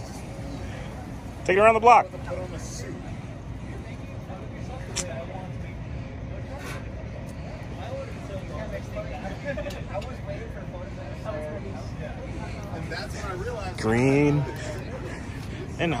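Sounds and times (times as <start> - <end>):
faint background chatter: 0.0 - 16.0
low street rumble: 0.0 - 16.0.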